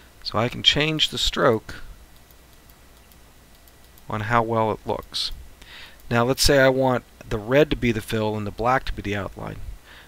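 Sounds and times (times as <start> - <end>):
low room hiss: 0.0 - 10.0
faint computer mouse clicks: 1.5 - 4.1.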